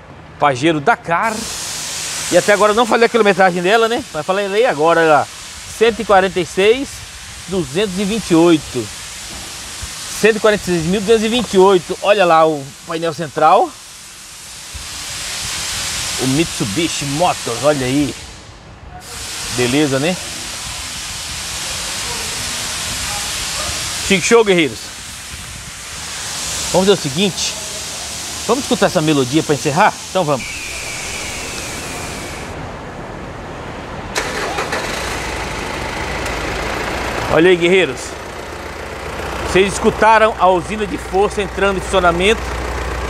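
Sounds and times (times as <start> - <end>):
rushing air hiss: 1.2 - 32.8, 34.2 - 43.0
diesel engine starting and idling: 30.4 - 43.0.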